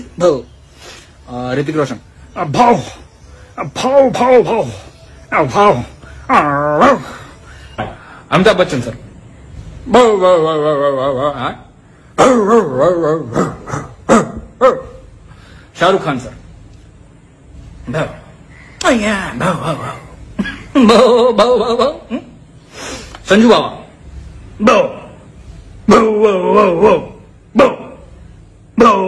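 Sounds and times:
man imitating dog barks: 6.3s - 7.1s, 12.2s - 15.1s.

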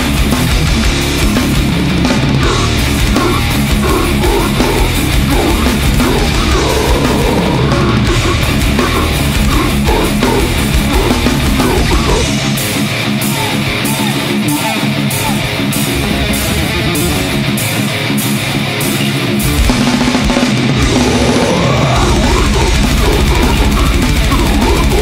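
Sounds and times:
death metal band playing live: 0.0s - 25.0s
fast low drumming: 0.0s - 25.0s.

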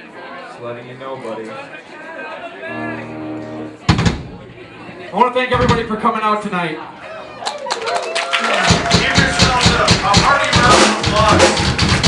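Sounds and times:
steady held tone: 2.7s - 3.9s.

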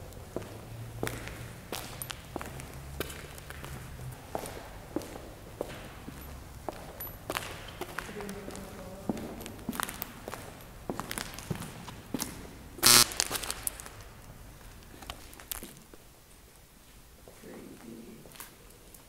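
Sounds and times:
footsteps on gritty concrete: 0.3s - 16.0s
loud scrape or crunch: 12.8s - 13.9s.

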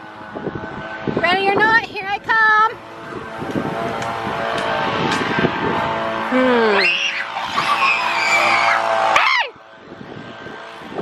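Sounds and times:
children shrieking: 6.6s - 9.6s.

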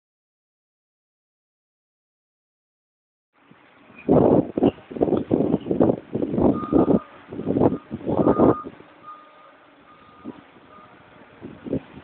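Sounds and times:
vehicle reversing alarm beeping: 6.5s - 11.2s.

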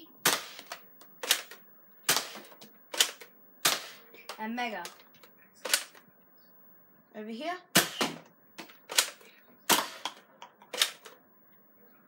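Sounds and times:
toy blaster plastic snaps: 7.8s - 11.1s.

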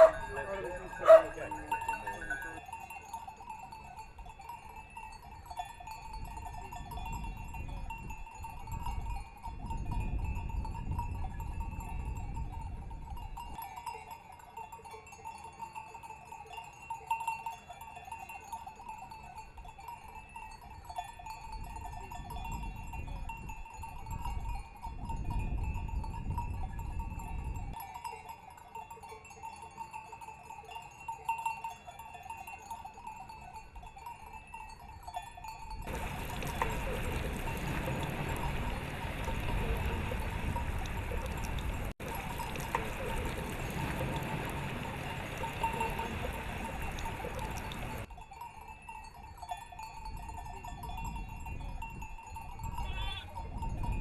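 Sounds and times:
livestock bells clanking: 0.0s - 54.0s.

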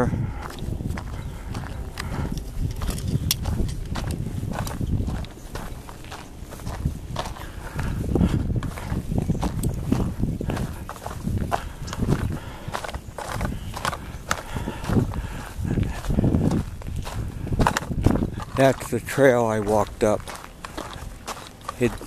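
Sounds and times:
footsteps on dirt trail: 0.0s - 22.0s.

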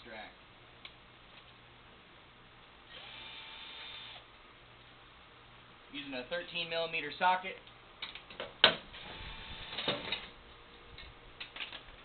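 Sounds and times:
cordless drill running: 2.9s - 4.2s.

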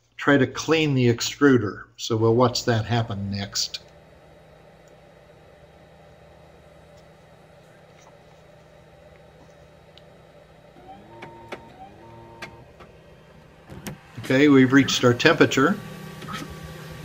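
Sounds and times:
printer humming: 2.5s - 17.0s
printer motor whines: 3.0s - 17.0s.

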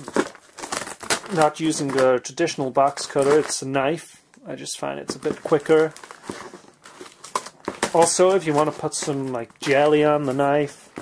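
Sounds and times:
cardboard flaps crinkling: 0.0s - 4.1s, 4.7s - 11.0s.

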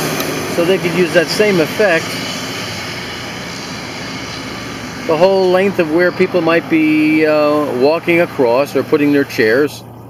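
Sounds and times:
car approaching: 0.0s - 10.0s.

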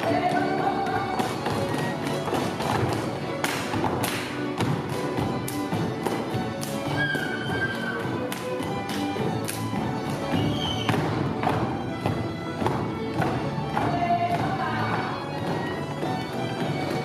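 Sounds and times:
boots stamping on wooden stage: 0.0s - 17.0s
folk string band playing dance tune: 0.0s - 17.0s.

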